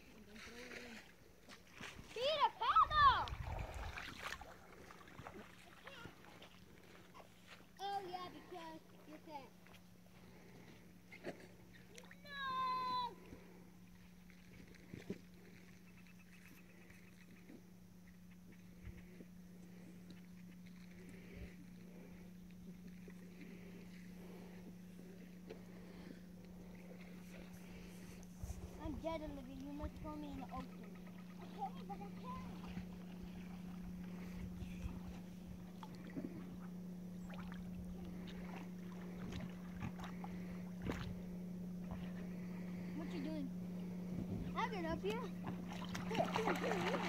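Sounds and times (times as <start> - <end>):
steady low hum: 0.0 - 47.0
child calling out: 2.3 - 3.3, 12.0 - 13.2.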